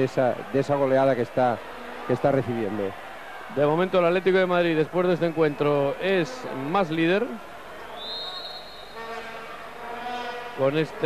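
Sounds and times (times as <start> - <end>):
indoor crowd murmur: 0.0 - 11.0
high whistle note: 7.9 - 9.0.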